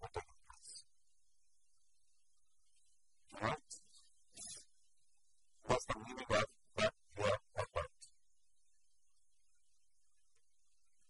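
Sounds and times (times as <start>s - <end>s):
person speaking: 3.3s - 4.6s.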